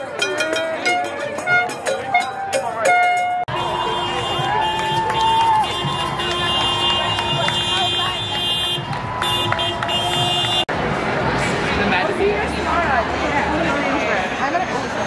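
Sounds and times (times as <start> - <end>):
crowd voices: 0.0 - 15.0
steady traffic: 0.0 - 15.0.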